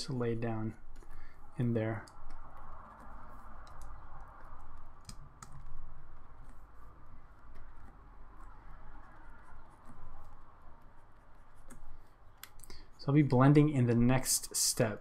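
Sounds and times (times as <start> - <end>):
stylus scratching on drawing tablet: 0.0 - 12.4
sharp clicks: 2.0 - 5.8.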